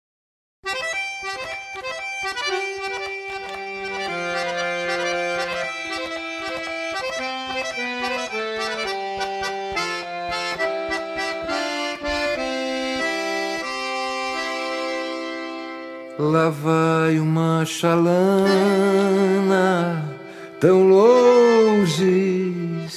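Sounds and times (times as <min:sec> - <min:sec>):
accordion music: 0:00.6 - 0:22.9.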